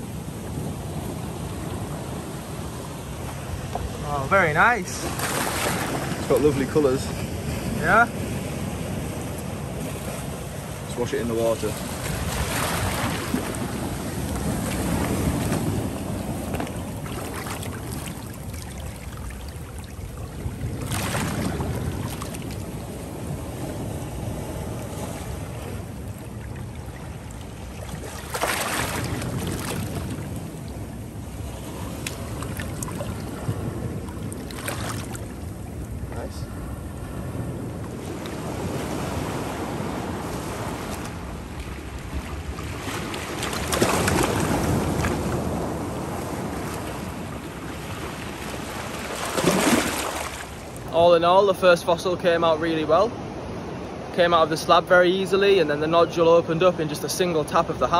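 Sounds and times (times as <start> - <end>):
seawater sloshing over rocks: 0.5 - 36.8, 37.4 - 51.0
wind noise on microphone: 11.8 - 50.2.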